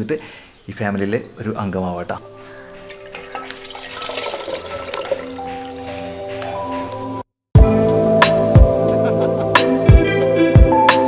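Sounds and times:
background music: 0:01.4 - 0:11.0
water splashing into fishbowl: 0:02.8 - 0:06.1.

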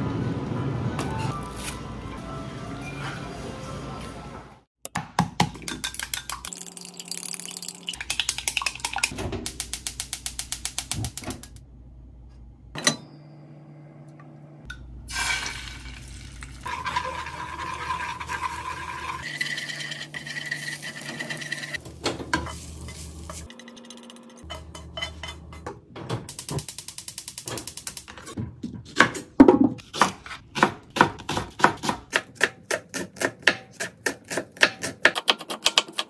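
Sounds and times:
egg cracking: 0:05.5 - 0:11.6
egg sizzling in frying pan: 0:15.1 - 0:21.8
chopsticks scraping pan: 0:16.7 - 0:23.8.

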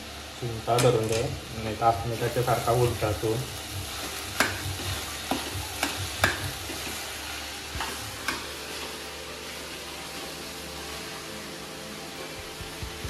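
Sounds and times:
filling sizzling in a pan: 0:00.0 - 0:13.0
metal utensils clinking on pan: 0:00.7 - 0:01.3
spatula stirring: 0:03.6 - 0:09.0.

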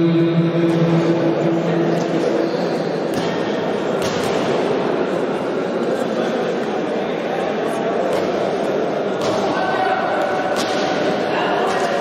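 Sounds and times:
echoing crowd chatter: 0:00.0 - 0:12.0.

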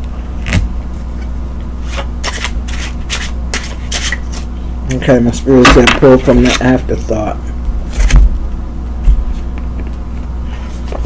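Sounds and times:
steady low hum: 0:00.0 - 0:11.0
cards flicking and scraping: 0:00.4 - 0:04.5.

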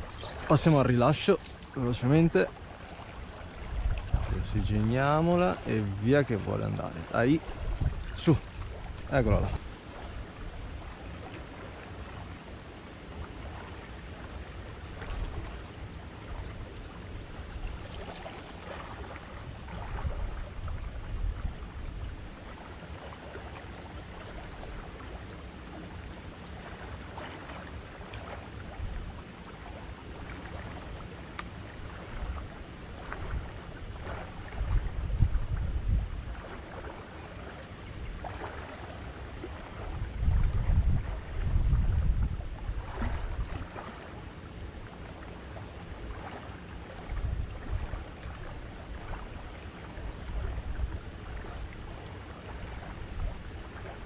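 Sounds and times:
wind buffeting microphone: 0:03.6 - 0:05.0, 0:07.4 - 0:09.6, 0:33.2 - 0:36.4, 0:39.8 - 0:43.6.

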